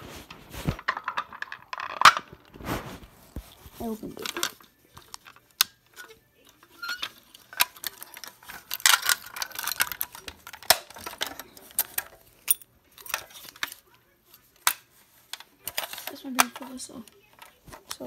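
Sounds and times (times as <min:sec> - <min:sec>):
rustling: 0:00.0 - 0:18.0.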